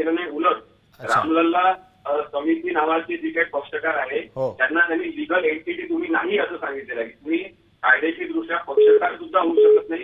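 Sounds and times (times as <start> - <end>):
person talking over telephone: 1.0 - 1.6.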